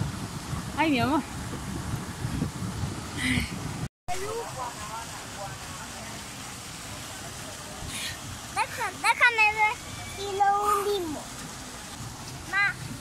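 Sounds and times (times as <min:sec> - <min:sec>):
rushing noise on open water: 0:00.0 - 0:13.0.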